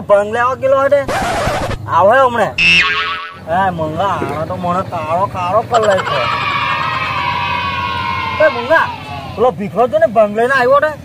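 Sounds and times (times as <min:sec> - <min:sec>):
person holding a long note: 0:02.6 - 0:03.6.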